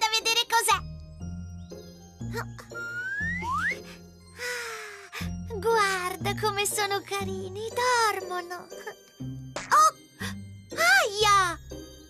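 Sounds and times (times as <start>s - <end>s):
light cartoon background music: 0.0s - 12.0s.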